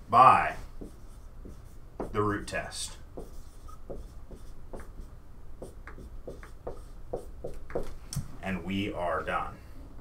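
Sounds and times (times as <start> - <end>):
marker writing on whiteboard: 0.2 - 8.0.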